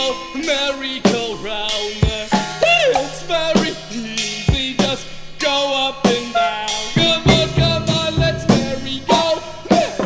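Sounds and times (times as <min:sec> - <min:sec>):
drum kit beating: 0:00.0 - 0:10.0
instruments playing sliding notes: 0:01.0 - 0:10.0.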